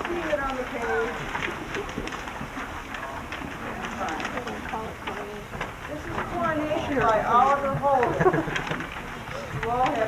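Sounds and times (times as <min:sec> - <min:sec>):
murmur of people talking: 0:00.0 - 0:10.0
paper pages rustling: 0:00.0 - 0:10.0.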